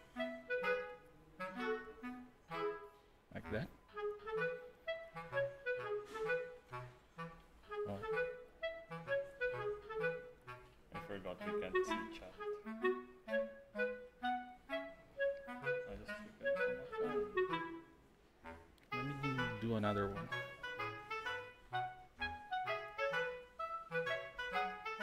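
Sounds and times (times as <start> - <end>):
background music with quick melody: 0.0 - 25.0.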